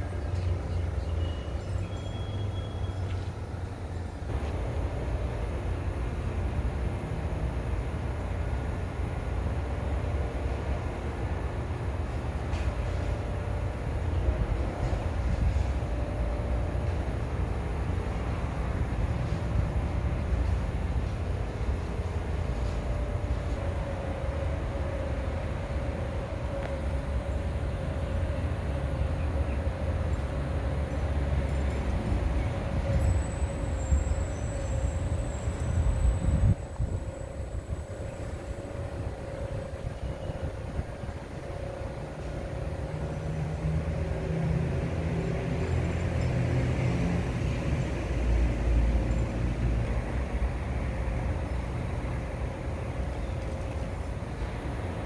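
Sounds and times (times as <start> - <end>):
faint high whine: 0.0 - 44.3
low outdoor rumble: 0.0 - 55.0.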